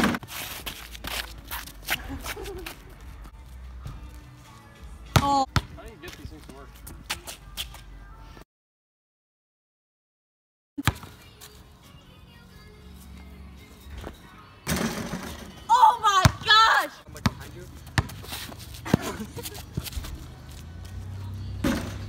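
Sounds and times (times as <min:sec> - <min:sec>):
basketball bouncing on asphalt: 0:05.0 - 0:07.2, 0:10.8 - 0:11.2, 0:16.2 - 0:16.6, 0:17.2 - 0:19.2
ball hitting hoop: 0:05.1 - 0:05.7, 0:21.6 - 0:22.0.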